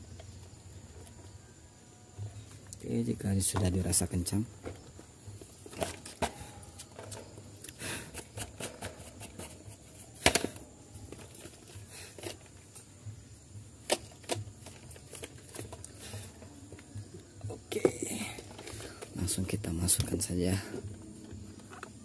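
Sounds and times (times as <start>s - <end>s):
plastic fan parts clicking and knocking: 2.3s - 22.0s.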